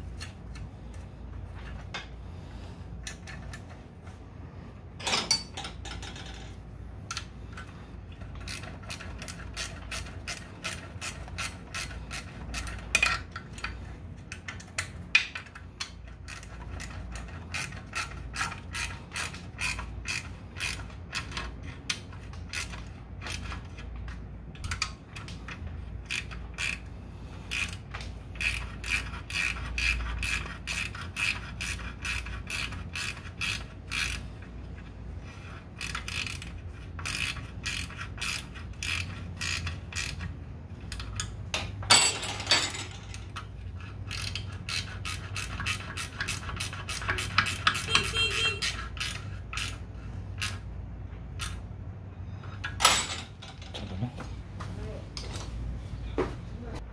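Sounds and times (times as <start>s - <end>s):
ratchet wrench clicking: 7.1s - 34.4s, 35.4s - 41.8s, 43.1s - 50.7s, 51.3s - 51.6s.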